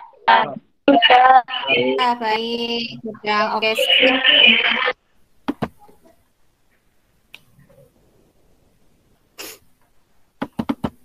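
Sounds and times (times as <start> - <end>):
faint murmur: 0.0 - 5.0.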